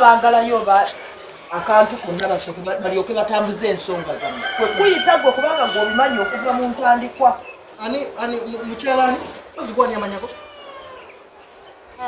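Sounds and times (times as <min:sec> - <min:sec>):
people talking: 0:00.0 - 0:10.4
rooster crowing: 0:03.8 - 0:07.0.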